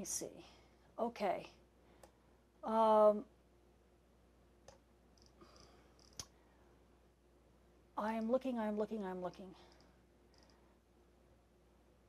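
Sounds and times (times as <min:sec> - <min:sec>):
computer mouse clicks: 0:09.3 - 0:10.6.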